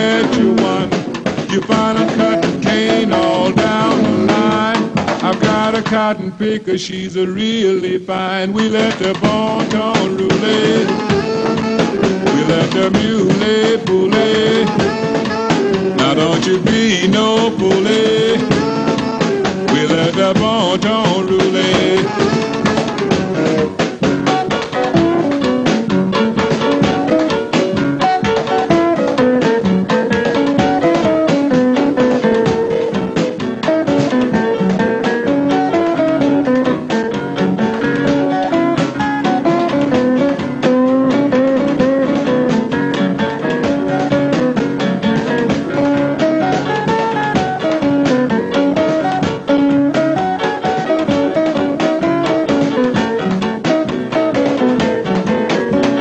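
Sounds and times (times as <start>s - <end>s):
lead guitar: 0.0s - 6.4s, 8.6s - 56.0s
drum kit beat: 0.0s - 56.0s.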